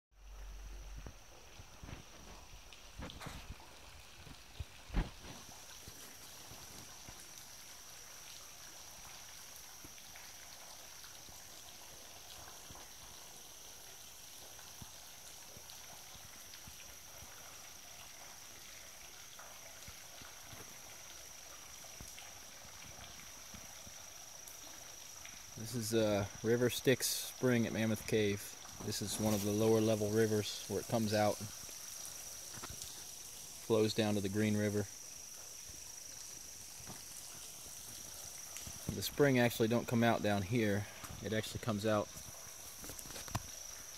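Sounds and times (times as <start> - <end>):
high insect chorus: 0.2 - 43.9
water trickling: 0.2 - 43.9.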